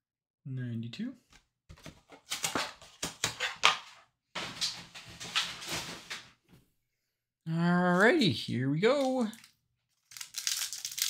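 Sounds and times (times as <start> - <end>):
foil wrappers crinkling: 8.9 - 11.0.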